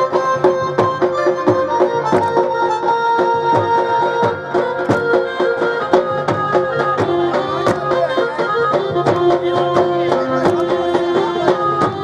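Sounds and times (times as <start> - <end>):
dhol drum beating: 0.0 - 12.0
keyboard melody: 0.0 - 12.0.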